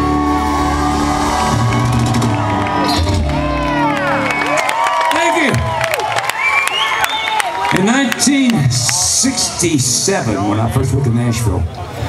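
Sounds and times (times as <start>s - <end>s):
audience cheering and clapping: 0.0s - 10.6s.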